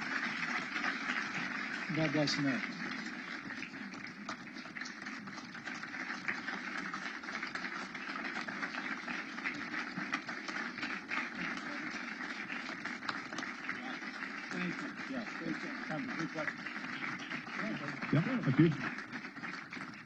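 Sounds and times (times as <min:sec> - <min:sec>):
audience applauding: 0:00.0 - 0:20.0.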